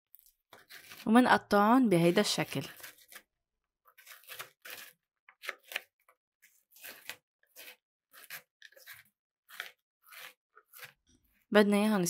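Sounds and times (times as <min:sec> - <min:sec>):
knife chopping crunchy wafer: 0:00.2 - 0:01.1, 0:02.1 - 0:11.4.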